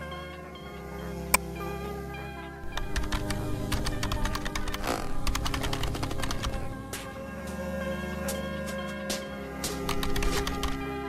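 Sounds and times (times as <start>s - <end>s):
background music: 0.0s - 11.0s
computer keyboard typing: 2.6s - 6.7s, 9.9s - 10.8s.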